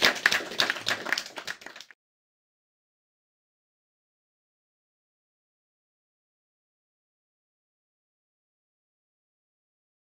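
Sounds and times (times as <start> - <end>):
audience applauding: 0.0 - 2.0.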